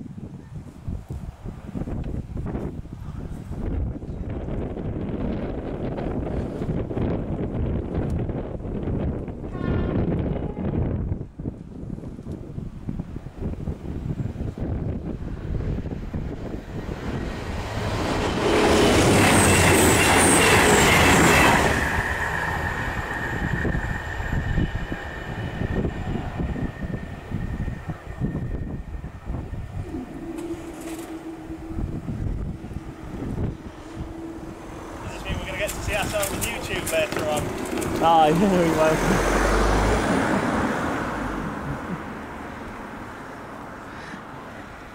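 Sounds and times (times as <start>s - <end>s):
wind on microphone: 0.0s - 44.9s
diesel train passing at speed: 0.8s - 44.9s
low steady hum: 29.0s - 35.6s
thin steady ringing tone: 29.6s - 35.5s.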